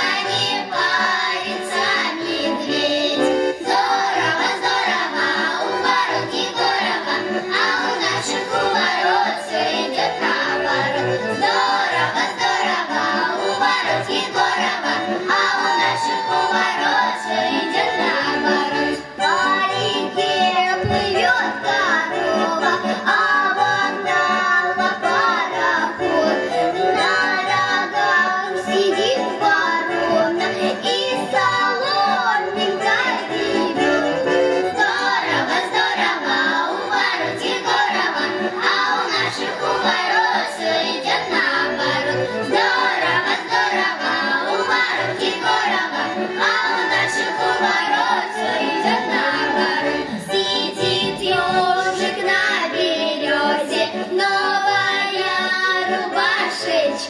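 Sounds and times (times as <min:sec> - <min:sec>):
girls singing a folk song: 0:00.0 - 0:57.0
instrumental accompaniment: 0:00.0 - 0:57.0.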